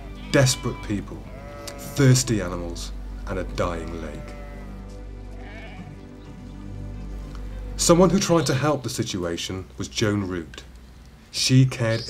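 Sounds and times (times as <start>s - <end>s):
sheep and goats bleating: 0.0s - 2.7s, 3.4s - 6.1s
background music with low notes: 0.0s - 10.7s.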